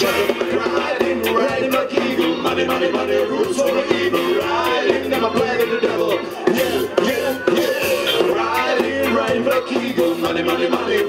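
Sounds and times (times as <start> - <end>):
drum kit beat: 0.0 - 11.0
live ska band: 0.0 - 11.0.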